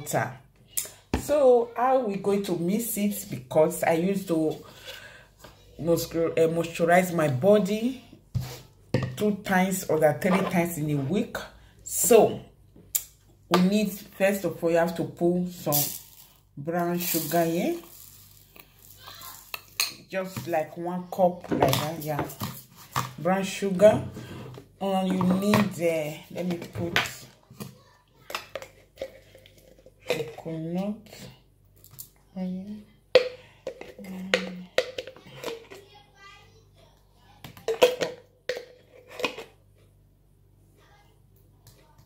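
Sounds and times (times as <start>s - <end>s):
sugar pouring into bowl: 15.7s - 19.8s.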